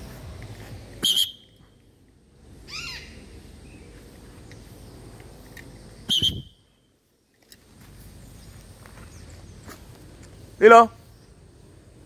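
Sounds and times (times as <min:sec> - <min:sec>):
parrot screeching: 0:02.7 - 0:03.2.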